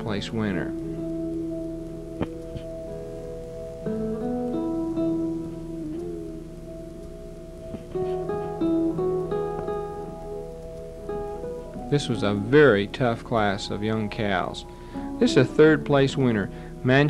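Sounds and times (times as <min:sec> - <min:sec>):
slow plucked guitar melody: 0:00.0 - 0:17.0.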